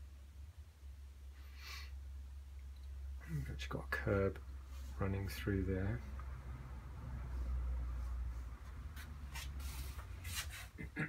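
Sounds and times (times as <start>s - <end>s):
paintbrush dragging over paper: 4.6s - 5.4s, 7.2s - 10.8s.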